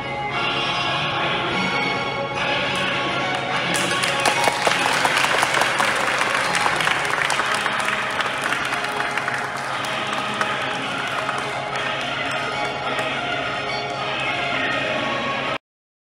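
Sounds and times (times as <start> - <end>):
background music: 0.0 - 15.6
audience applauding: 3.4 - 14.0.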